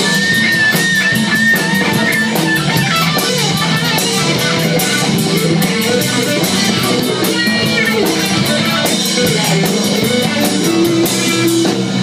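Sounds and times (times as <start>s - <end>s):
bass guitar: 0.0s - 12.0s
drum kit with cymbal beat: 0.0s - 12.0s
electric guitar: 0.0s - 12.0s.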